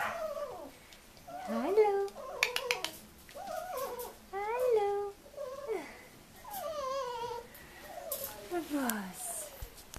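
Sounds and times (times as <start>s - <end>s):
puppies whining and yipping: 0.0s - 1.6s, 2.2s - 4.2s, 6.4s - 8.4s.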